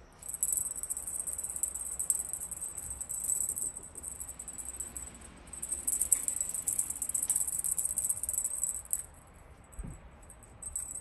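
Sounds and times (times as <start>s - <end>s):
cat toy jingling and rattling: 0.2s - 11.0s.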